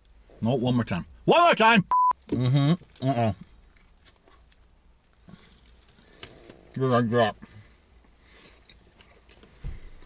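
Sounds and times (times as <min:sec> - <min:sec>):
faint chewing: 0:02.7 - 0:06.8.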